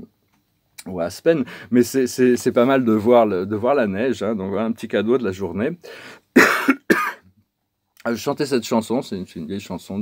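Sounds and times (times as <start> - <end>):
man coughing: 6.4 - 7.3.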